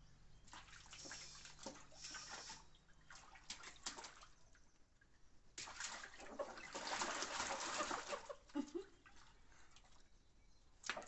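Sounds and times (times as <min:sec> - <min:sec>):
water splashing in a bath tub: 0:00.4 - 0:04.7, 0:05.5 - 0:10.1.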